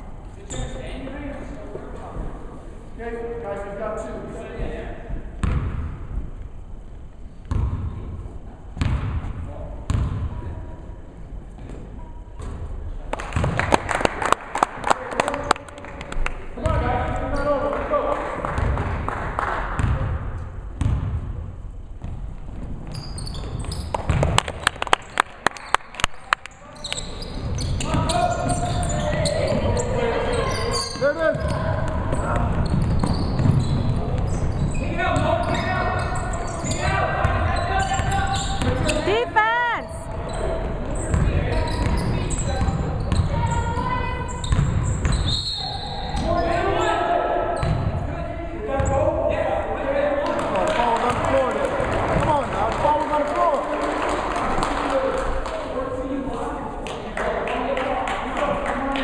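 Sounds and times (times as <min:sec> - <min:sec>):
sneakers squeaking: 0:00.4 - 0:01.1, 0:07.4 - 0:08.2, 0:08.8 - 0:10.7, 0:11.5 - 0:12.7, 0:16.6 - 0:17.6, 0:22.0 - 0:49.2
basketball bouncing on hardwood floor: 0:09.9 - 0:10.3, 0:24.0 - 0:24.4, 0:31.3 - 0:34.3, 0:44.5 - 0:45.3
players shouting: 0:35.1 - 0:40.1.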